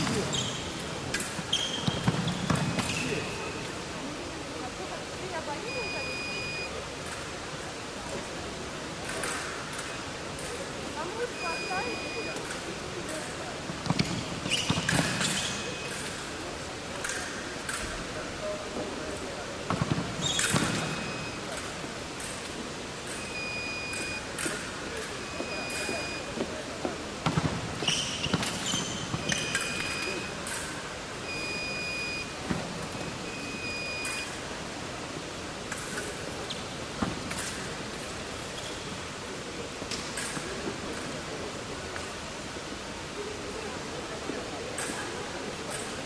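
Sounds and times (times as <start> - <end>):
scoring machine beeps: 5.6 - 6.8, 11.2 - 12.5, 20.8 - 21.6, 23.2 - 24.4, 25.1 - 26.4, 31.2 - 34.4.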